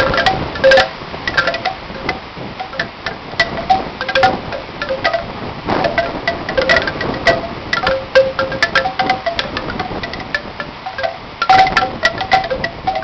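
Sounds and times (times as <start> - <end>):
bamboo wind chime clacking: 0.0 - 13.0
wind on microphone: 0.0 - 13.0.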